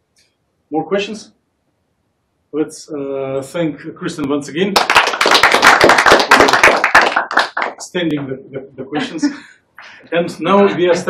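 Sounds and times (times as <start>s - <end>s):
audience applauding: 4.8s - 8.0s.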